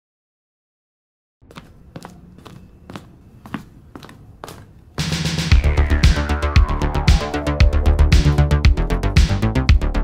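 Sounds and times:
footsteps on stairs: 0:01.4 - 0:05.4.

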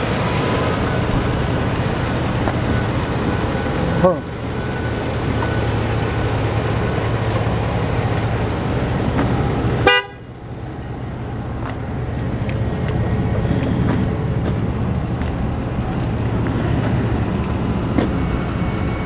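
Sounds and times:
pickup truck engine idling: 0:00.0 - 0:19.0
short horn toot: 0:09.8 - 0:10.2.

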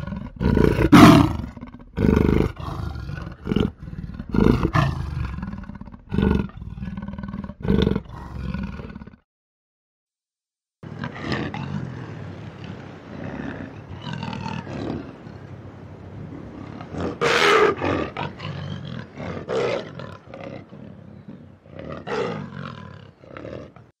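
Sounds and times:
big cat calling: 0:00.0 - 0:09.1, 0:10.9 - 0:23.9.

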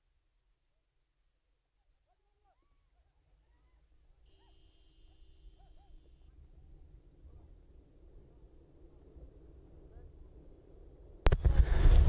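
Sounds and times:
faint steady tone: 0:00.0 - 0:11.3
faint low rumble: 0:00.2 - 0:12.0.

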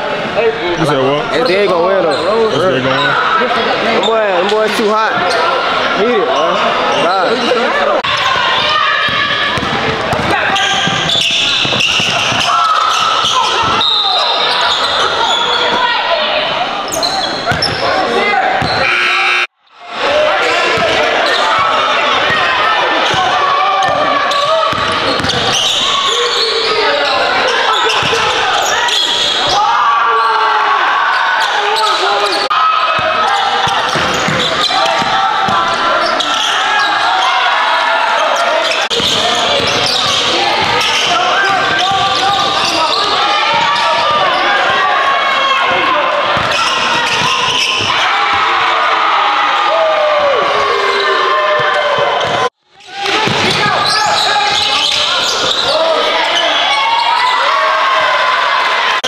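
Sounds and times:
voices echoing in a hall: 0:00.0 - 0:59.0
basketball bouncing on gym floor: 0:09.0 - 0:12.5.

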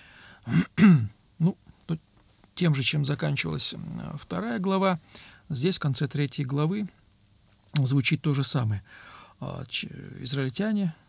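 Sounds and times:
man breathing in: 0:00.0 - 0:00.4, 0:05.1 - 0:05.5, 0:08.9 - 0:09.4
man clearing his throat: 0:00.5 - 0:01.2
man speaking: 0:00.5 - 0:02.0, 0:02.6 - 0:06.9, 0:07.8 - 0:11.0.

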